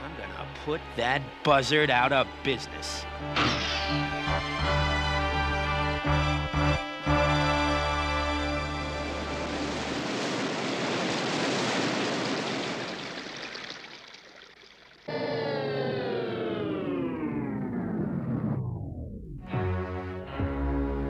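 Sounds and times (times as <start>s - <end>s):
cartoon rushing water: 8.7s - 15.1s
turbine whine falling in pitch: 15.1s - 19.4s.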